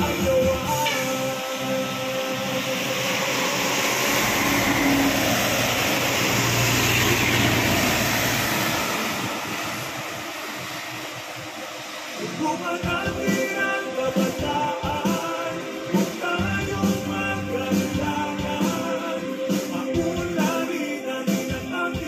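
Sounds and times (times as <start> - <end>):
concrete mixer truck driving past: 0.0 - 20.0
tyres hissing on wet road: 0.0 - 22.0.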